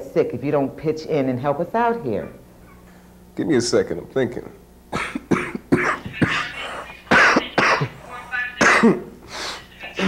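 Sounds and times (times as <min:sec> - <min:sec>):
man coughing harshly: 0:04.9 - 0:08.0, 0:08.6 - 0:09.1.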